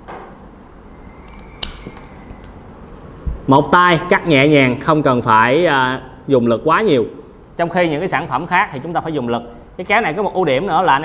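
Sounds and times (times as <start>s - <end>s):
pruning shears snapping branch: 1.1s - 2.5s.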